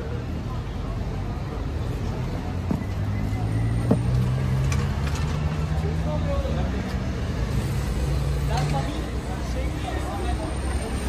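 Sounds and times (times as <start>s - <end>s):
people's voices: 0.0s - 11.0s.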